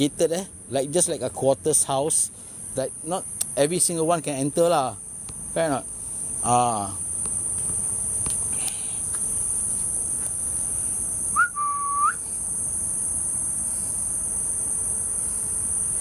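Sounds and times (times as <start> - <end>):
insects chirring: 0.0 - 16.0
short whistle: 11.3 - 12.2.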